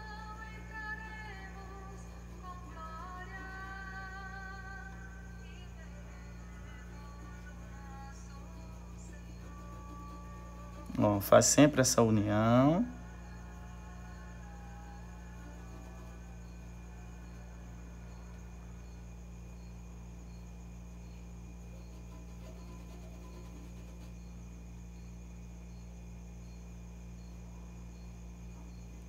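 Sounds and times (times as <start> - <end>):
cricket chirping: 0.0 - 29.0
steady low hum: 0.0 - 29.0.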